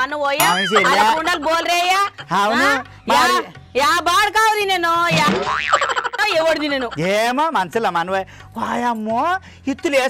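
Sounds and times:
cartoon boing sound effect: 0.4 - 1.3.

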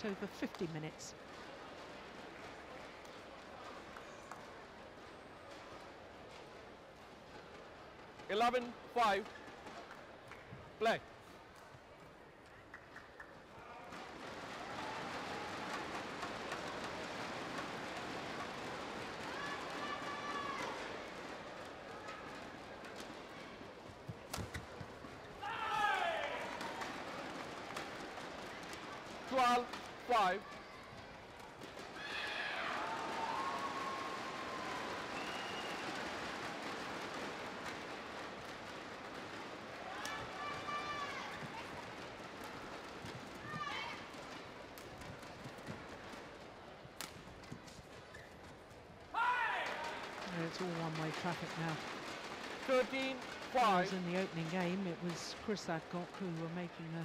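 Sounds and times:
crowd noise in arena: 0.0 - 57.0.

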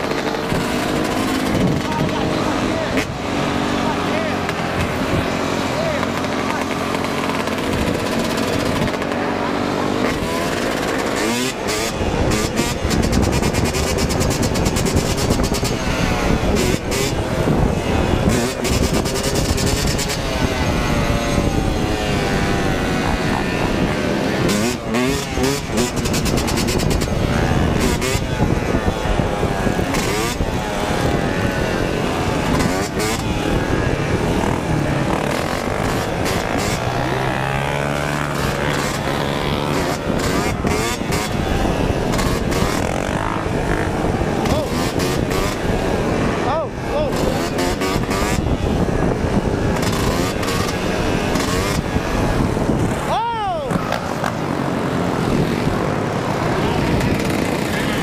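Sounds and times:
dirt bike engine revving: 0.0 - 58.0
other motorcycles running: 0.0 - 58.0
wind rushing over microphone: 0.0 - 58.0.

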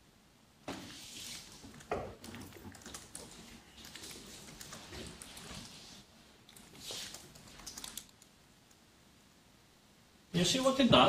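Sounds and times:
laptop keyboard clicking: 1.7 - 5.6, 6.5 - 8.3.

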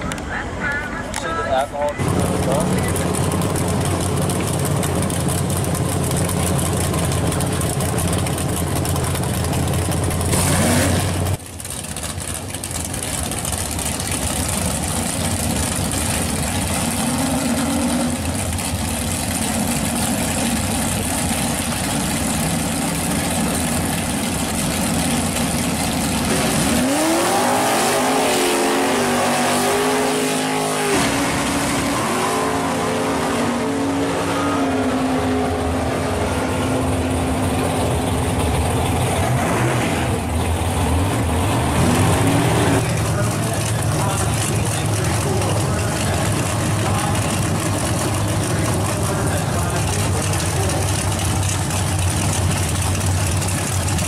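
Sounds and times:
drag car engines revving: 0.0 - 54.0
rough engine sound: 0.0 - 54.0
steady engine note: 0.0 - 54.0.

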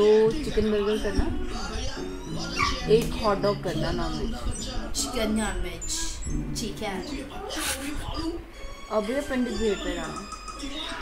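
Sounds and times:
background music: 0.0 - 11.0
woman speaking on the phone: 8.9 - 10.3.

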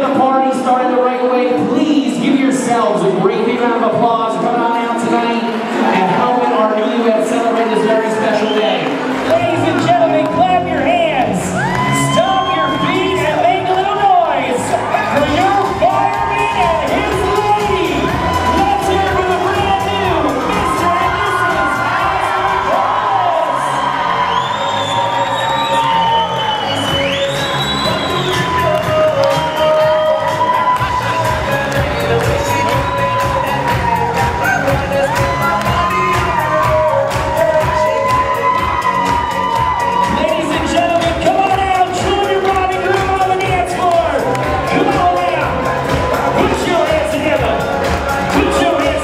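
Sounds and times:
crowd cheering and shouting: 0.0 - 49.0
dance music: 0.0 - 49.0.

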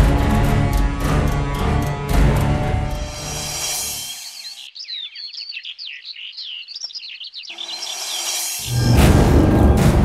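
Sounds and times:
background music: 0.0 - 4.6, 7.8 - 10.0
birds chirping: 0.2 - 9.0.

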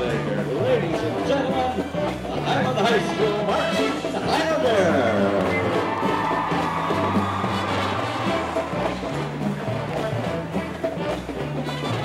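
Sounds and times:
marching band playing swing: 0.0 - 12.0.

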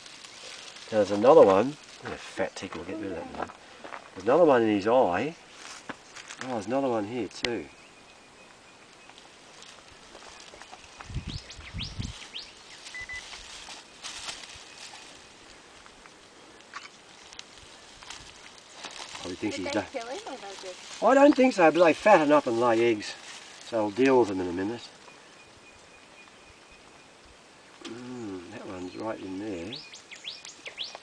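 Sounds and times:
birds chirping: 0.0 - 31.0
faint outdoor ambience: 0.0 - 31.0
microphone rumble: 10.9 - 12.4.

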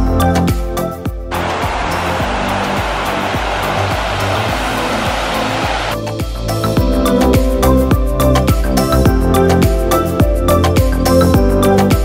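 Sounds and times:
background music with steady beat: 0.0 - 12.0
high hiss: 1.3 - 6.0.

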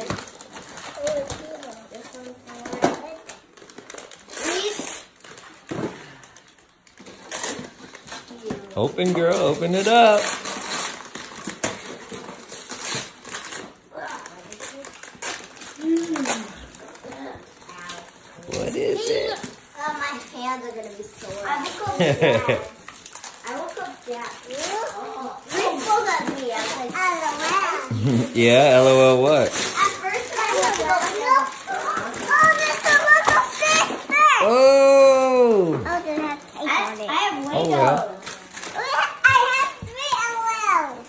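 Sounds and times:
wrapping paper rustling and tearing: 0.0 - 41.0
children's vocal sounds: 27.4 - 38.2.

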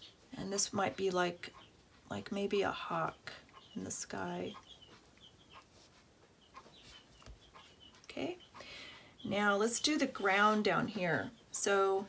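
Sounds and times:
bird chirping faintly: 0.0 - 12.0.

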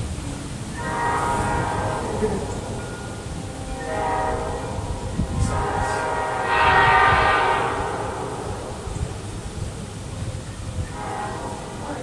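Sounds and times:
locomotive air horn chord: 0.0 - 12.0.

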